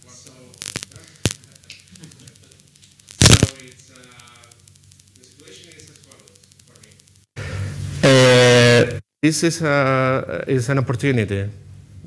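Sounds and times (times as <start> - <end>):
mains hum: 0.0 - 12.0
sharp clicks: 0.3 - 7.3.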